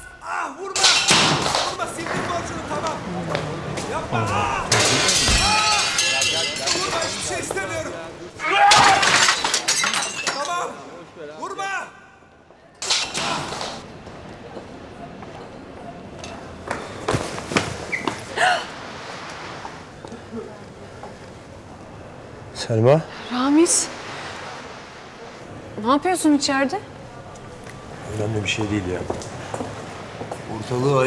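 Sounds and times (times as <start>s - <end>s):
raised indistinct voices: 0.0s - 15.2s
glass shattering: 0.8s - 1.8s, 4.7s - 8.0s, 8.7s - 10.8s, 12.8s - 13.8s
things crashing: 4.4s - 8.0s, 8.6s - 10.7s, 12.8s - 13.9s
small crashes and clinks: 4.7s - 7.9s, 8.7s - 10.8s, 12.8s - 13.8s.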